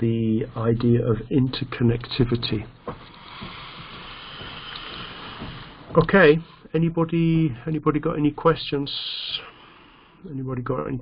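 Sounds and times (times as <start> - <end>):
microphone background hiss: 0.0 - 11.0.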